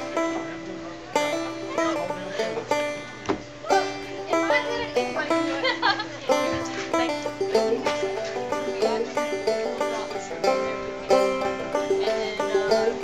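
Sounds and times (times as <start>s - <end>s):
banjo picking bluegrass: 0.0s - 13.0s.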